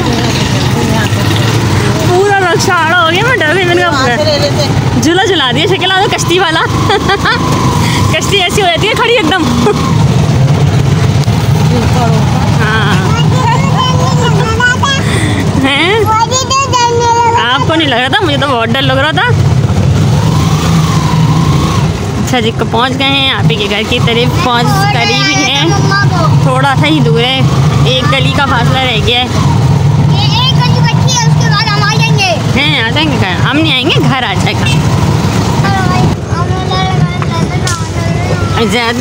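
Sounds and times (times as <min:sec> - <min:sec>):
auto-rickshaw engine running: 0:00.0 - 0:39.0.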